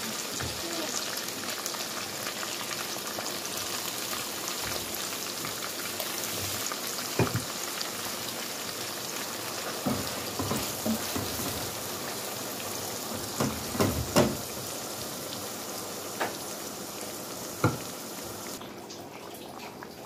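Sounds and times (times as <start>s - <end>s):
meat sizzling in oil: 0.0s - 18.6s
spatula knocking in pan: 6.4s - 7.5s, 9.8s - 11.8s, 13.2s - 14.5s, 17.6s - 17.9s.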